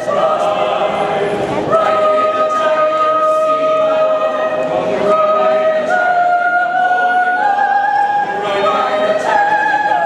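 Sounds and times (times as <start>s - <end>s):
mixed choir singing: 0.0s - 10.0s.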